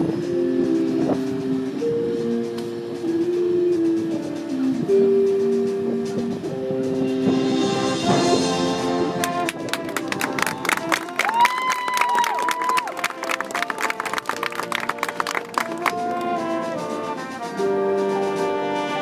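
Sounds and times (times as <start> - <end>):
sharp percussion hits: 0.0 - 11.0
marching band playing: 0.0 - 19.0.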